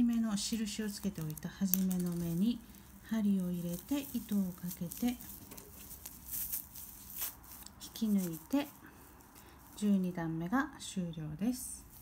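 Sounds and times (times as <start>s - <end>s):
rustling of crochet yarn: 0.0s - 12.0s.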